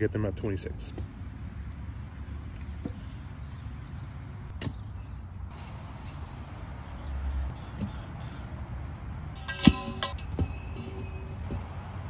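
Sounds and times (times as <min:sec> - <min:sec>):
metal pipe clanging: 0:09.4 - 0:11.6.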